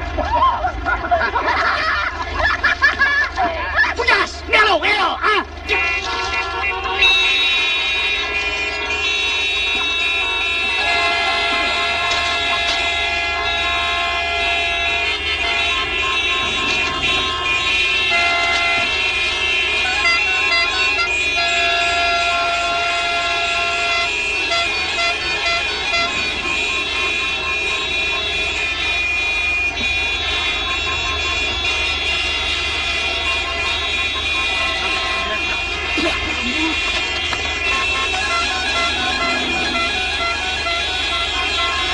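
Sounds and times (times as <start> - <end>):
car horns honking: 0.0 - 41.9
person shouting: 3.6 - 6.0.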